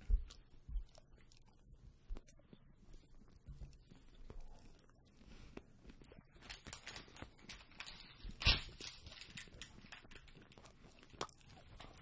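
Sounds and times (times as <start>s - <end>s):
close chewing and mouth sounds: 0.0s - 12.0s.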